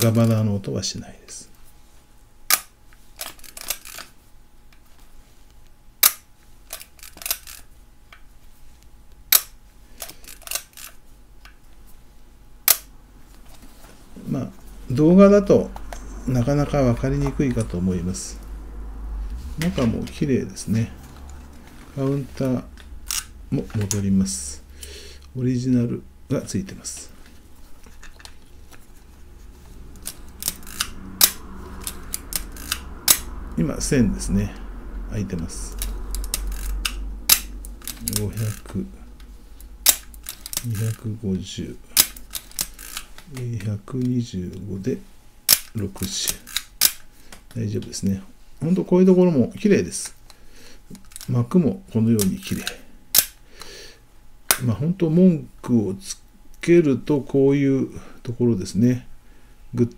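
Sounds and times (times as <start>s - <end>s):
film advance lever ratcheting: 6.0s - 7.7s, 9.3s - 11.0s, 30.0s - 33.3s, 35.7s - 38.7s, 41.9s - 43.2s
camera mechanism clicking: 30.0s - 33.2s.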